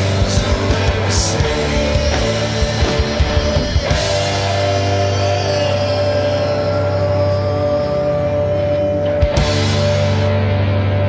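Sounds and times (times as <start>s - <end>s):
droning rock chord: 0.0s - 11.0s.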